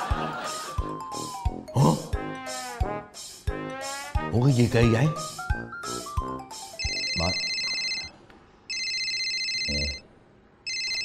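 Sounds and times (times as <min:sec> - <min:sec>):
electronic telephone ringing: 0:06.8 - 0:10.0, 0:10.6 - 0:11.0.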